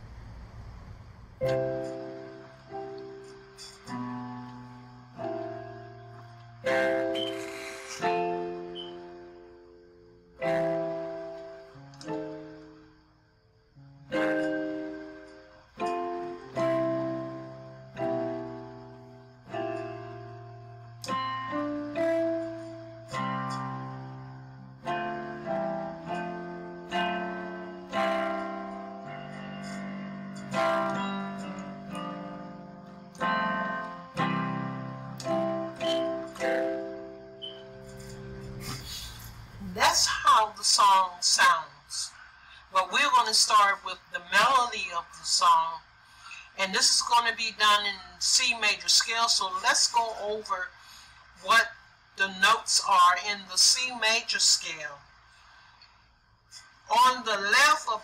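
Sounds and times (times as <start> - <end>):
slow gospel piano: 0.0 - 55.7.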